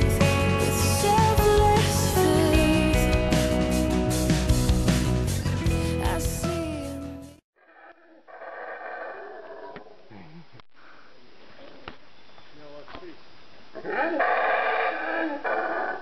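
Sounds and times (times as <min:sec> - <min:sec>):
howler monkeys howling: 0:13.7 - 0:16.0.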